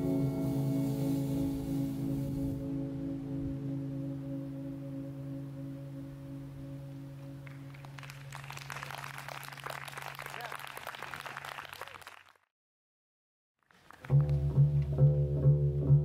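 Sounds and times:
audience applause: 7.4 - 12.4, 13.6 - 14.3.

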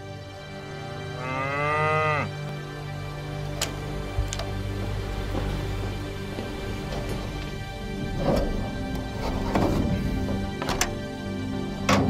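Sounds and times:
cow mooing: 1.0 - 2.6.

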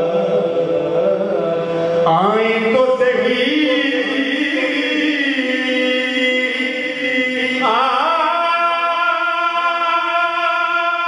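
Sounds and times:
man singing into microphone: 0.0 - 11.0.

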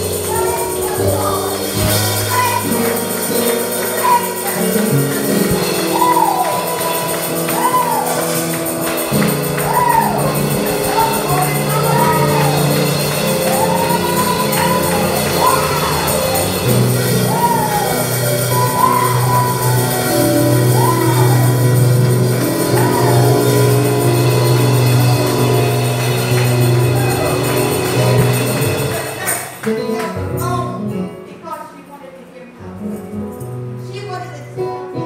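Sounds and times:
sliding keyboard melody: 0.0 - 31.3
gospel keyboard chords: 0.0 - 31.9.

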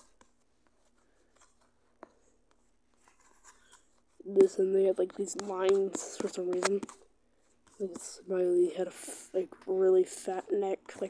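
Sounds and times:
stylus strokes on tablet screen: 0.0 - 11.0.

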